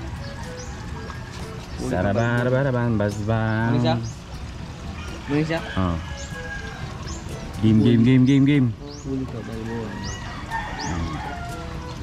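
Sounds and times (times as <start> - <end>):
chickens clucking: 0.0 - 12.0.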